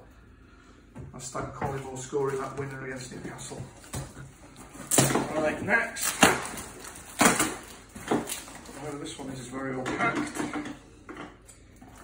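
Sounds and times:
cardboard parcel ripping: 4.6s - 9.3s.

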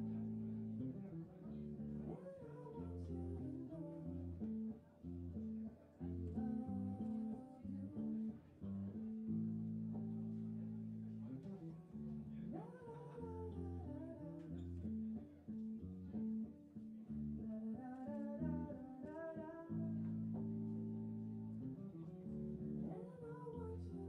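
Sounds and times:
electric bass guitar low notes: 0.0s - 24.0s.

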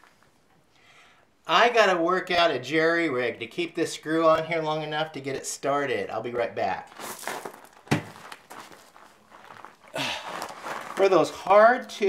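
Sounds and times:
crackling rustle: 6.8s - 12.0s
small parts rustling: 6.9s - 11.2s.

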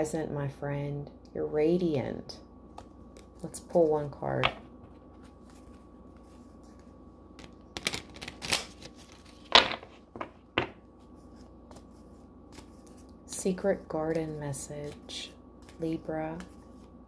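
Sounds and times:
cards shuffled by hand: 4.9s - 10.3s, 11.0s - 13.2s, 14.0s - 17.0s.

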